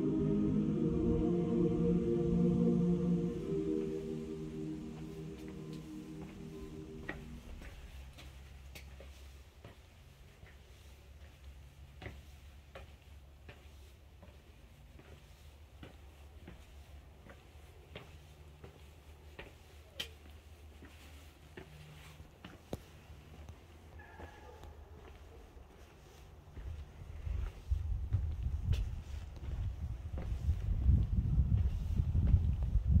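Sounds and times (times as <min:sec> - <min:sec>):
sustained music tones: 0:00.0 - 0:08.2
low steady hum: 0:00.0 - 0:08.7
footsteps on flagstone floor: 0:05.0 - 0:32.7.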